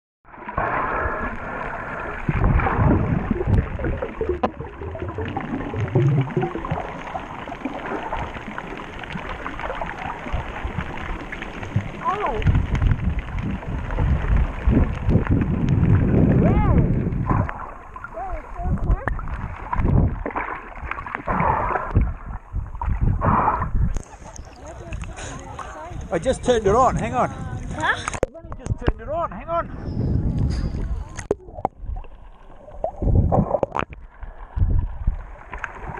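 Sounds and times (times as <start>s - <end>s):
water gurgling underwater: 0.3s - 26.1s, 29.9s - 35.9s
brief gliding squeaks: 30.0s - 31.0s.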